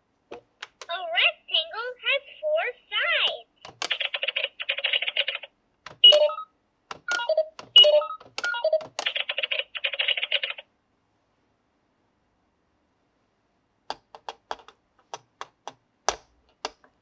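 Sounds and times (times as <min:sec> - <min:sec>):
rapid electronic chattering: 0:03.9 - 0:05.5, 0:09.0 - 0:10.6
toy cash register beeps: 0:06.0 - 0:06.5, 0:07.1 - 0:10.6.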